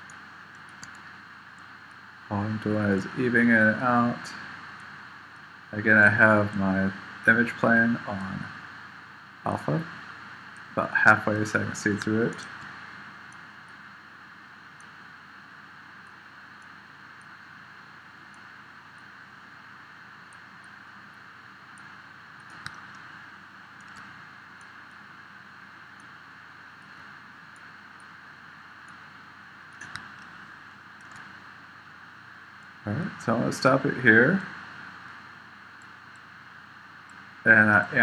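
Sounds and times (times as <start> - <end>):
faint clicks: 0.0 - 2.0, 21.7 - 23.2, 23.8 - 25.0, 29.7 - 30.4, 31.0 - 31.4
room tone hiss: 0.0 - 38.0.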